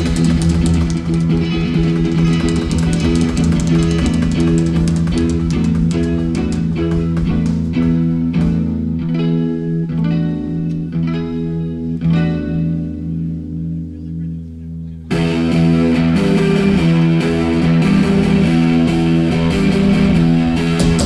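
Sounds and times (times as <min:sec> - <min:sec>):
distorted electric guitar riff: 0:00.0 - 0:21.0
drums and full rock band: 0:20.6 - 0:21.0.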